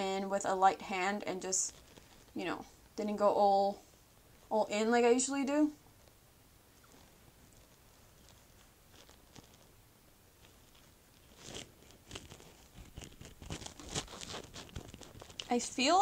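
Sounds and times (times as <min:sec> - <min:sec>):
soft dabbing and rustling taps: 0:10.4 - 0:16.0.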